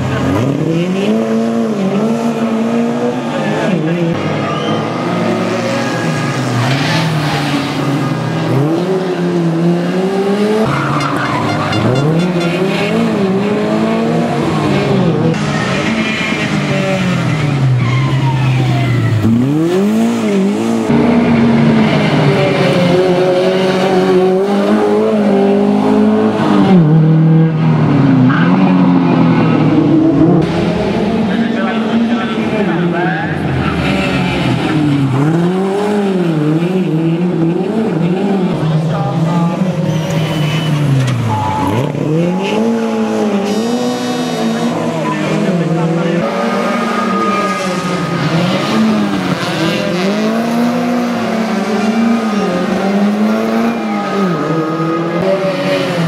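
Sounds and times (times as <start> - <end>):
rally car engine revving: 0.0 - 56.0
tyre squeal: 4.4 - 5.1, 15.4 - 19.4, 39.6 - 42.8.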